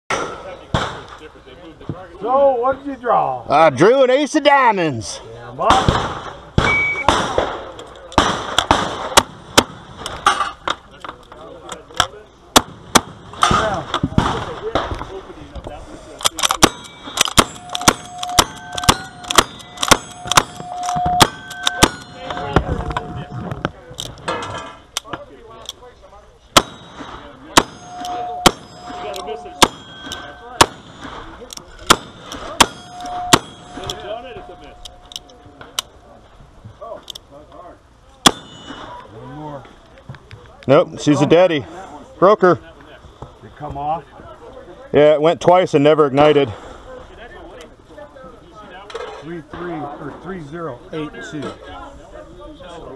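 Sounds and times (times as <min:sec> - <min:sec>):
bullets clanging on steel targets: 0:00.1 - 0:01.1, 0:16.2 - 0:23.2, 0:26.5 - 0:35.8, 0:38.2 - 0:39.1.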